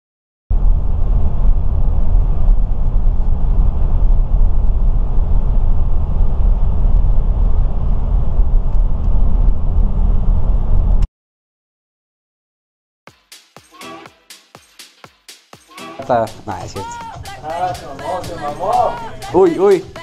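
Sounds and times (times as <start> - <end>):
car road and engine noise: 0.6 - 11.1.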